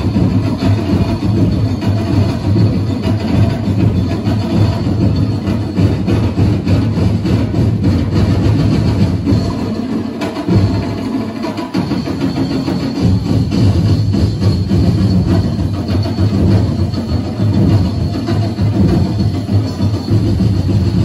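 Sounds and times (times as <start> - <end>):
percussion ensemble drumming: 0.0 - 21.0.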